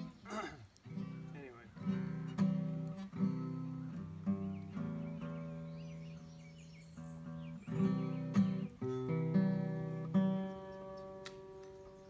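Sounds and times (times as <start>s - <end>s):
acoustic guitar chord ringing: 0.0s - 6.3s, 7.0s - 11.2s
songbirds chirping: 0.0s - 12.0s.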